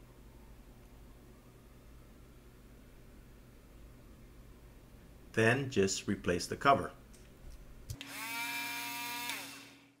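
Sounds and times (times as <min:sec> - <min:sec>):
grooming comb motor whirring: 0:08.0 - 0:10.0.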